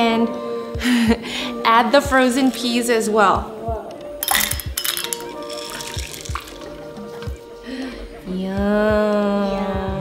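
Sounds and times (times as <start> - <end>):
soft background music: 0.0 - 10.0
peas splashing into broth: 4.2 - 7.6.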